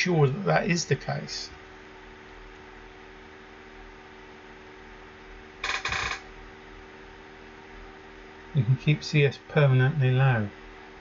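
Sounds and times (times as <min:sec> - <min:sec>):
low room hum with tones: 0:00.0 - 0:11.0.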